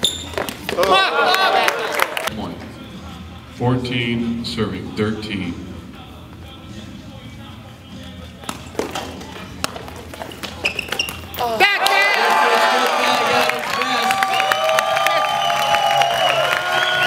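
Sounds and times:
low hall noise: 0.0s - 17.0s
music: 2.3s - 11.6s.

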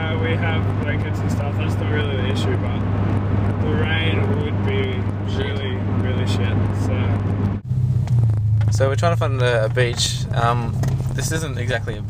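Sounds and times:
car driving interior drone: 0.0s - 12.0s.

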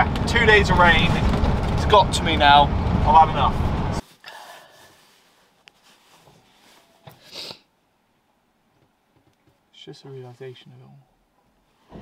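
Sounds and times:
woman sniffing: 7.2s - 7.7s.

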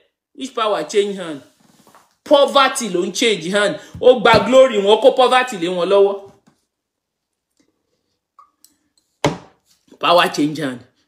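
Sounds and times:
person speaking: 0.4s - 1.6s, 2.2s - 6.4s, 9.9s - 10.9s.

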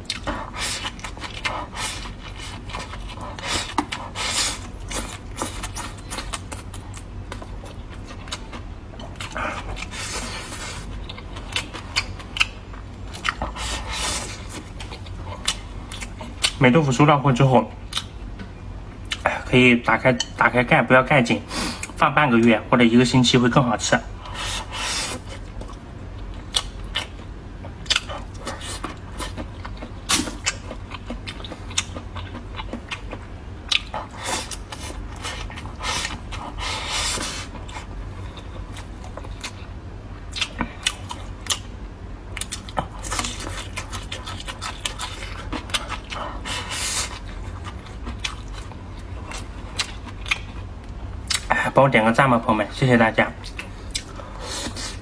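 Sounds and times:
person chewing and smacking: 0.0s - 16.7s, 17.8s - 19.4s, 25.1s - 51.5s, 53.4s - 55.0s
low steady hum: 0.0s - 55.0s.

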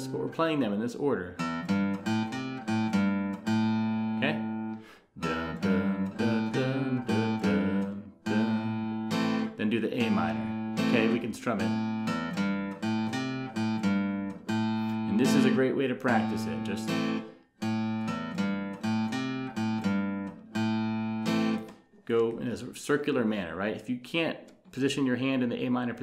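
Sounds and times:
acoustic guitar blues fill: 1.3s - 22.0s.

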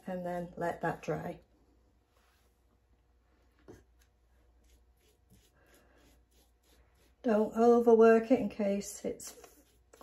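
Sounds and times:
paintbrush scratching strokes: 3.6s - 7.6s, 9.2s - 10.0s.

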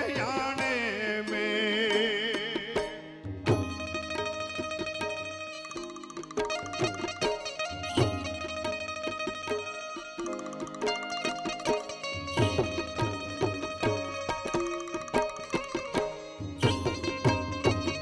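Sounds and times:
plucked banjo folk melody: 0.0s - 18.0s.

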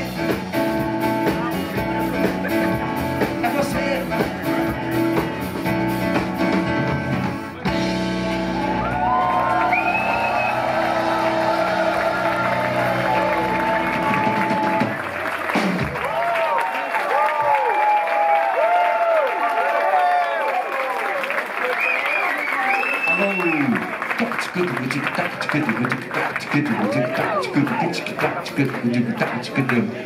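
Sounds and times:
live band playing: 0.0s - 16.3s, 22.6s - 29.6s
audience applauding: 8.4s - 30.0s
gliding vocal lines: 25.0s - 30.0s.

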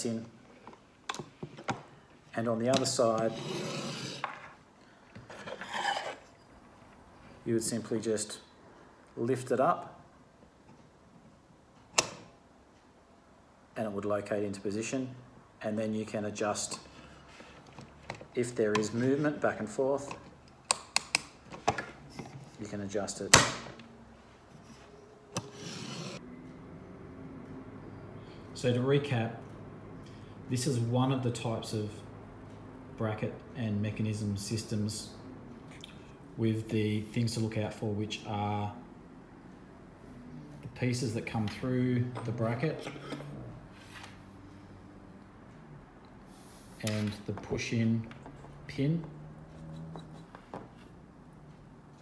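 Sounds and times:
metal tube scraping on tabletop: 3.2s - 4.6s, 5.3s - 6.4s, 25.4s - 26.2s.

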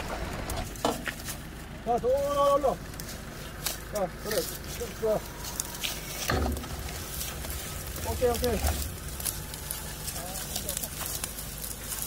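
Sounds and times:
men calling while heaving: 3.8s - 11.4s
low rumble: 4.7s - 12.0s.

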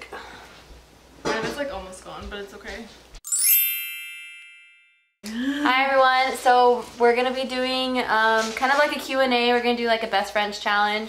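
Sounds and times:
bright chime ringing: 3.2s - 5.2s.

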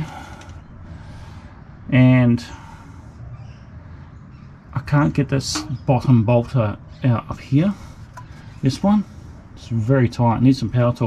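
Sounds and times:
man speaking: 4.8s - 7.8s.

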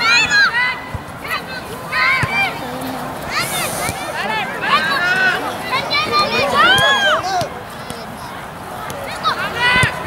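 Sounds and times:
children shouting: 1.4s - 7.5s.

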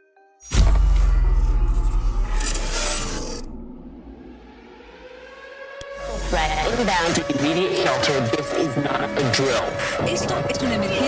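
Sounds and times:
rising sustained tone: 0.6s - 11.0s.

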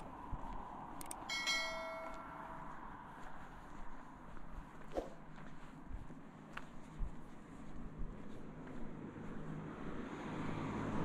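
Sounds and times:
faint street ambience: 0.0s - 11.0s
notification bell ding: 1.3s - 2.7s.

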